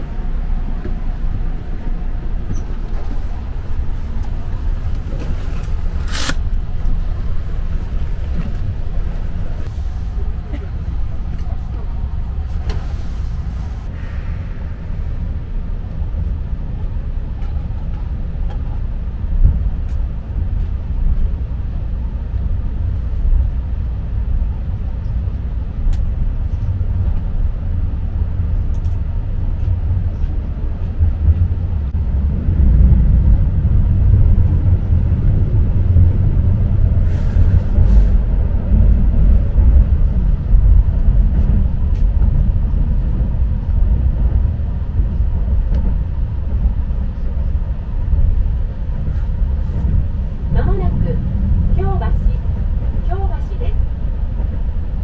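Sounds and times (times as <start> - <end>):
train wheels and motors rumbling: 0.0 - 55.0.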